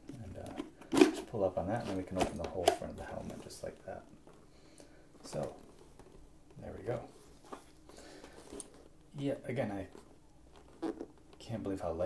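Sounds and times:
helmet handling noise: 0:00.0 - 0:04.5, 0:05.1 - 0:09.1, 0:09.7 - 0:11.6.

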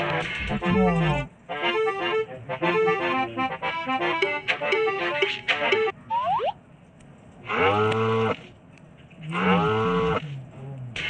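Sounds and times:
cattle mooing: 0:00.5 - 0:01.3, 0:07.5 - 0:08.4, 0:09.2 - 0:10.8.

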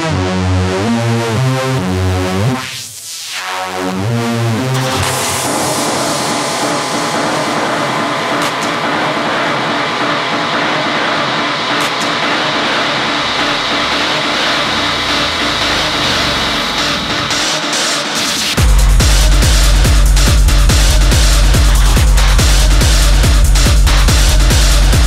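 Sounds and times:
distorted synth texture: 0:02.0 - 0:25.0
low bass rumble: 0:18.6 - 0:25.0.

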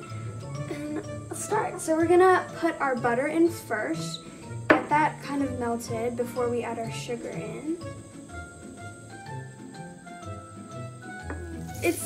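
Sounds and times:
melodic background music: 0:00.0 - 0:12.0
butter sizzling in frying pan: 0:08.0 - 0:12.0.

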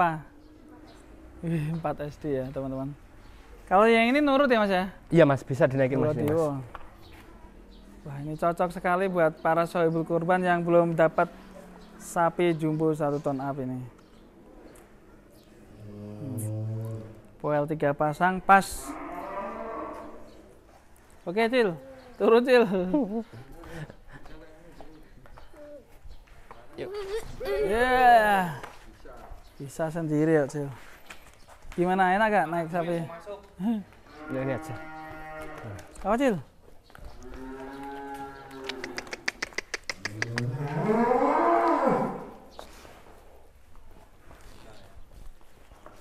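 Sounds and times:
cow mooing: 0:15.8 - 0:17.2, 0:18.8 - 0:20.3, 0:34.2 - 0:35.7, 0:40.3 - 0:42.4
sharp clicks: 0:38.6 - 0:40.5.

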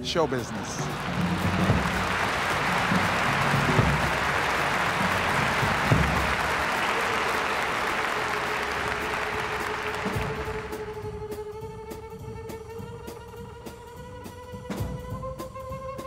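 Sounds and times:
audience applauding: 0:00.0 - 0:11.0.

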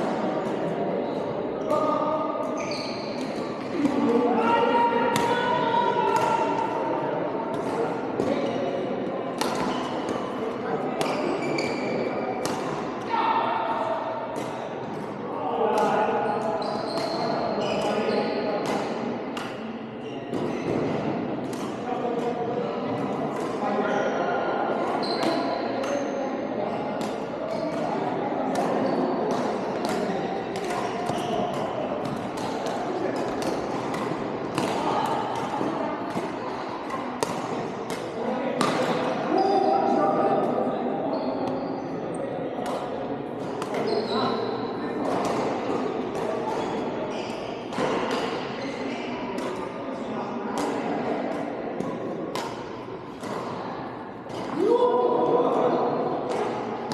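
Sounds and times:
rackets hitting shuttlecock: 0:09.4 - 0:10.2, 0:11.0 - 0:12.9, 0:27.0 - 0:39.2, 0:42.6 - 0:44.1, 0:45.0 - 0:47.0, 0:49.4 - 0:49.7, 0:50.6 - 0:53.6.

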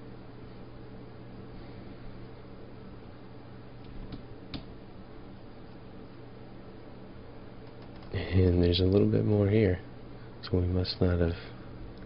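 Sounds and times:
electrical hum and hiss: 0:00.0 - 0:12.0
faint clicks: 0:07.6 - 0:09.1.

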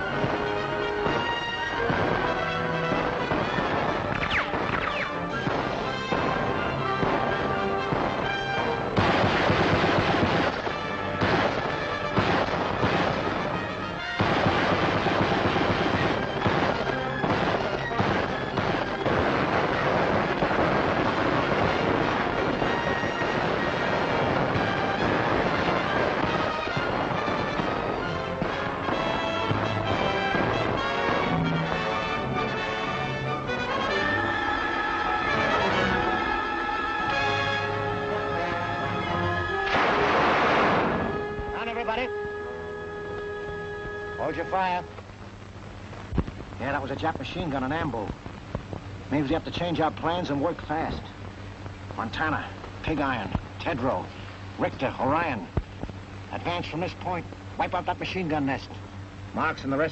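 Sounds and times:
dramatic orchestral music: 0:00.0 - 0:20.5, 0:21.3 - 0:44.9
explosions: 0:00.0 - 0:32.2, 0:38.4 - 0:41.9
gunfire: 0:00.1 - 0:31.9, 0:39.6 - 0:41.3.

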